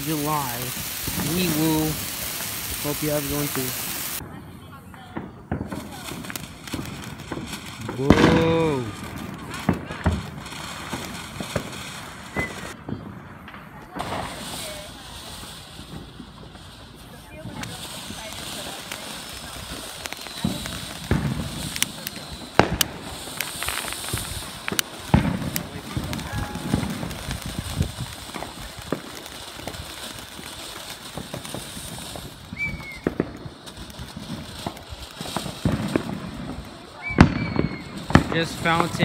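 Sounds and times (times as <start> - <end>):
firework hissing sparks: 0.0 - 12.8, 13.7 - 39.0
firework pops and crackles: 0.0 - 39.0
thin whistling tone: 12.3 - 12.7, 32.5 - 33.0.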